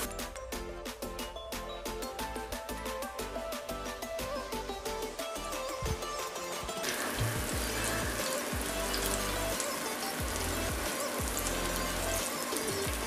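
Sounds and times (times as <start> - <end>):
background music: 0.0 - 13.0
fish sizzling in hot oil: 6.4 - 13.0.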